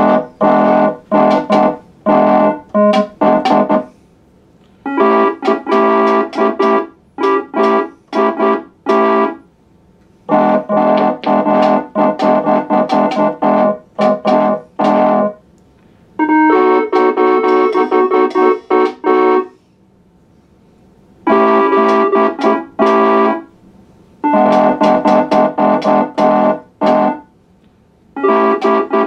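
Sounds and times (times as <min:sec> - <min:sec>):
electronic keyboard chords: 0:00.0 - 0:04.0, 0:04.8 - 0:09.4, 0:10.2 - 0:15.5, 0:16.2 - 0:19.5, 0:21.2 - 0:23.5, 0:24.2 - 0:27.3, 0:28.1 - 0:29.0.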